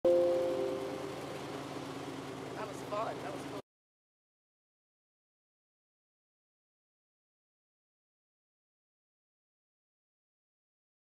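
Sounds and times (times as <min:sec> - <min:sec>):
two-note tone: 0:00.0 - 0:01.4
low motor hum: 0:00.0 - 0:03.6.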